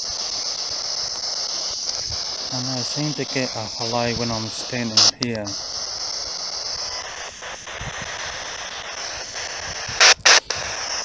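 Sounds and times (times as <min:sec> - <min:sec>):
background hiss: 0:00.0 - 0:11.0
high-pitched insect drone: 0:00.0 - 0:11.0.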